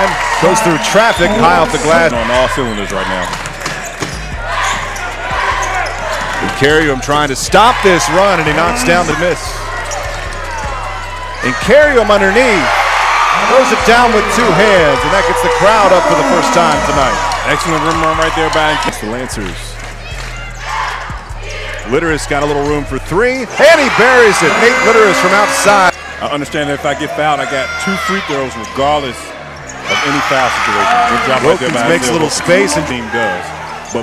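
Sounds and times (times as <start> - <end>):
arena crowd noise: 0.0 - 34.0
background music with bass line: 4.1 - 23.4.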